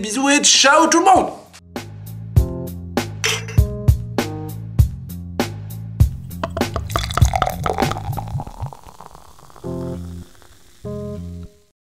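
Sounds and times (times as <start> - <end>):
beer fizzing and pouring: 6.2 - 11.7.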